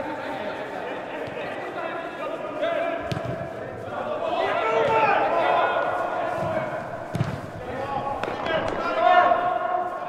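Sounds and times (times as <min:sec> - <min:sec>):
players shouting in a hall: 0:01.6 - 0:10.0
football being kicked: 0:03.0 - 0:03.5, 0:06.4 - 0:08.8.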